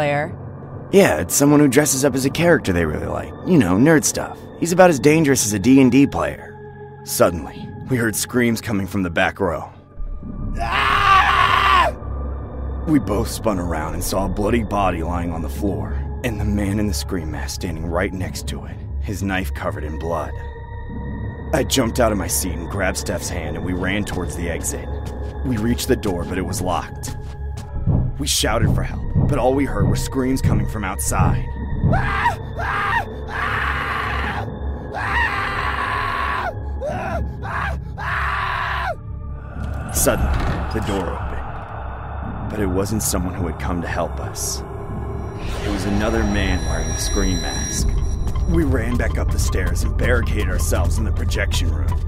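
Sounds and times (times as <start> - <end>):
low steady music: 0.0 - 52.0
loud scream: 10.6 - 12.0, 31.9 - 39.0
low steady drone: 12.0 - 33.4, 39.0 - 52.0.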